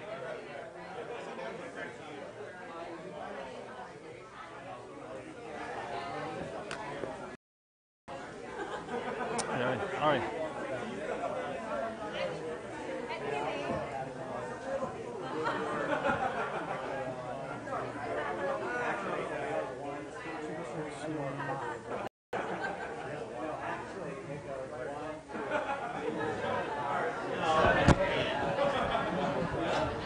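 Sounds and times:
crowd chatter: 0.0 - 7.4, 8.1 - 30.0.

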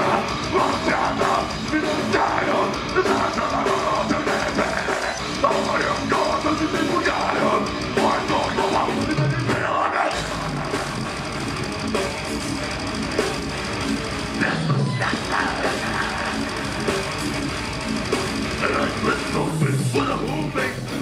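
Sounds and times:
heavy metal band playing live: 0.0 - 21.0.

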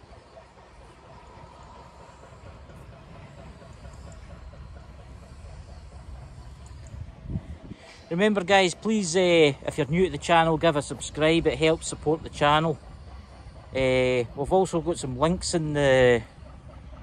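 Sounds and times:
low outdoor rumble: 0.0 - 17.0.

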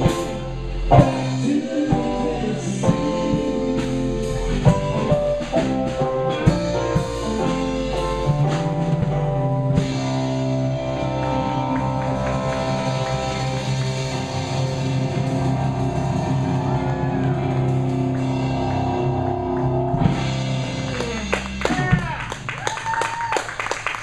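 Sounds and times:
held guitar and keyboard notes: 0.0 - 22.6
drum strokes: 0.0 - 22.7
rock band playing instrumental: 0.0 - 24.0.

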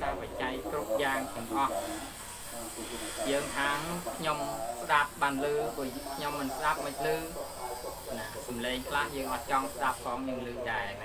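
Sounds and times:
man lecturing: 0.0 - 7.4, 8.1 - 11.0
recording hiss: 0.0 - 11.0.

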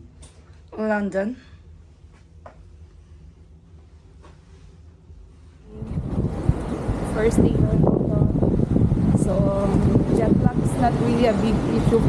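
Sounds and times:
traffic rumble: 0.0 - 12.0
wind buffeting microphone: 5.7 - 12.0.

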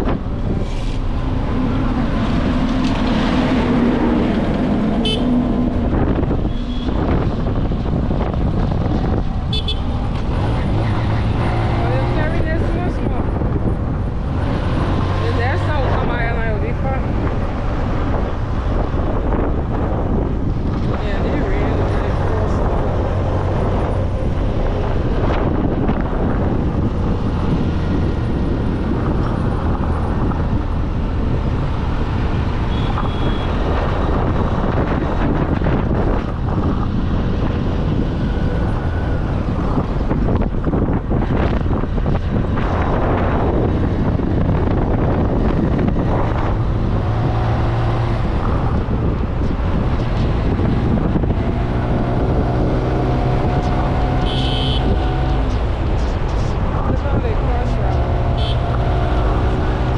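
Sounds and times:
wind and road noise: 0.0 - 59.9.

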